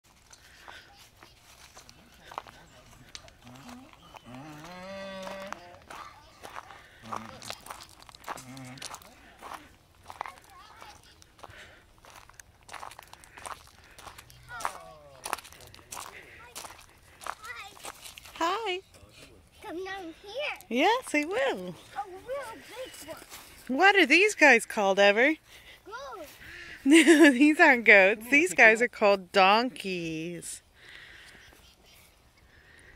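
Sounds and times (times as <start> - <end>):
footsteps crunching on gravel: 0.1 - 18.6, 21.7 - 23.8
indistinct voices: 1.7 - 10.4.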